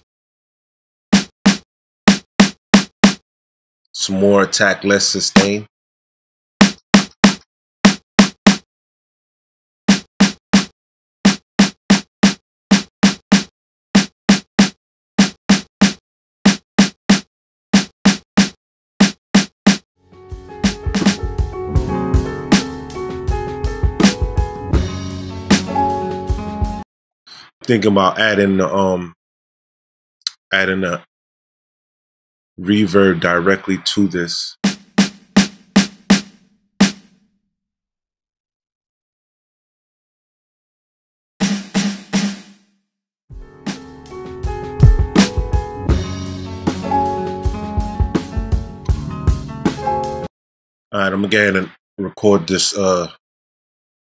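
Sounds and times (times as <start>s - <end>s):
snare drum hits: 1.2s - 3.2s, 6.6s - 8.6s, 20.9s - 21.3s, 44.8s - 45.3s
snare drum hits with reverb: 44.8s - 45.3s.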